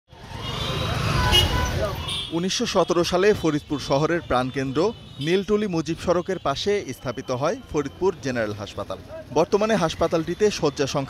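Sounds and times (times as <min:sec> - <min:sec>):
engines rumbling: 0:00.1 - 0:11.0
vehicles passing: 0:00.1 - 0:11.0.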